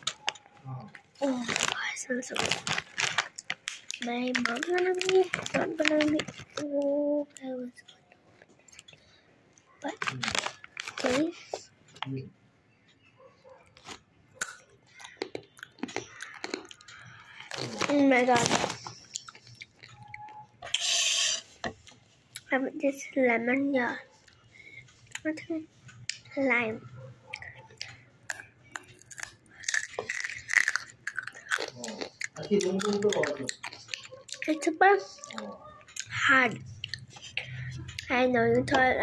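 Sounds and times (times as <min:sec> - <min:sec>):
tortilla chip crunching: 0:01.2 - 0:06.6, 0:13.8 - 0:20.2, 0:28.3 - 0:34.6.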